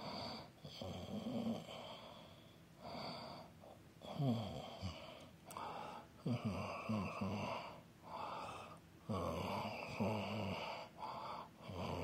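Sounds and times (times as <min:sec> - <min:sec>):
person breathing loudly: 0:01.7 - 0:08.8, 0:09.5 - 0:12.0.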